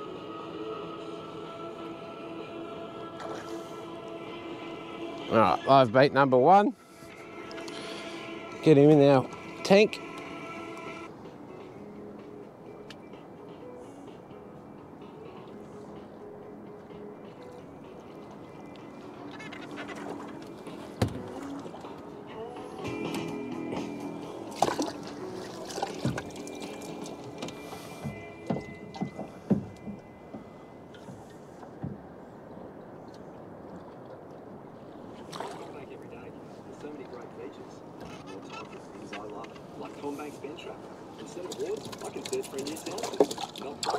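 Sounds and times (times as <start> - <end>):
background music with held notes: 0.0 - 33.6.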